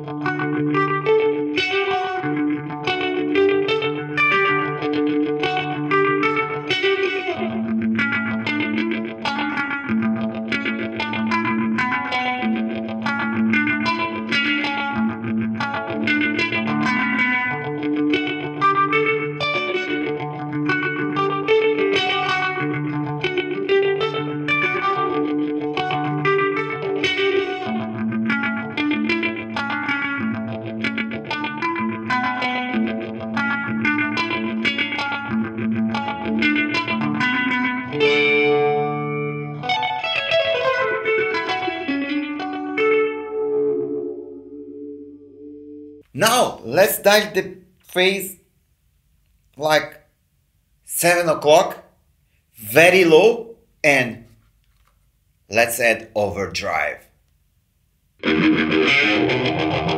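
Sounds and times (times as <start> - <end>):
electric guitar arpeggios with phaser: 0.0 - 46.0, 58.2 - 59.9.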